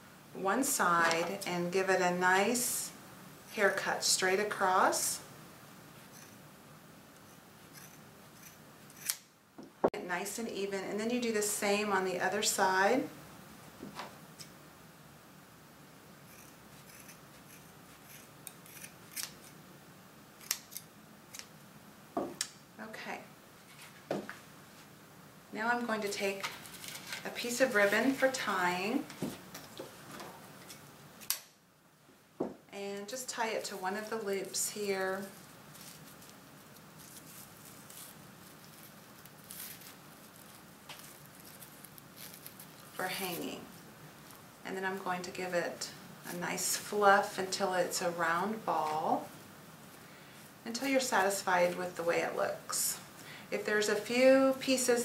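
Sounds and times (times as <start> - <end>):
fabric and ribbon rustling: 26.1 - 30.8, 33.1 - 45.0
soft crinkles: 26.2 - 31.0, 33.3 - 45.1.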